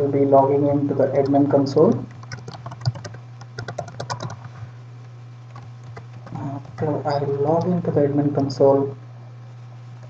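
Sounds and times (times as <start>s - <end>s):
steady low hum: 0.0s - 10.0s
typing on computer keyboard: 2.0s - 4.5s.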